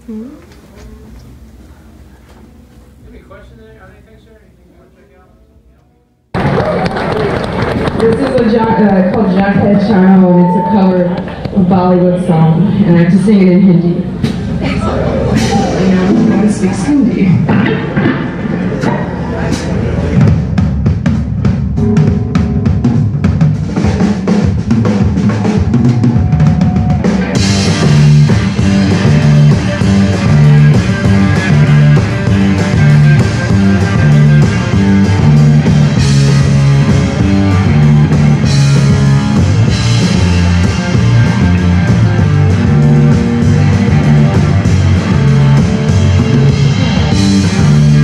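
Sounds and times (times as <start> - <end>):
crowd clapping and cheering: 6.3 - 11.7, 25.3 - 48.0
live rock band playing: 6.4 - 13.2, 14.0 - 48.0.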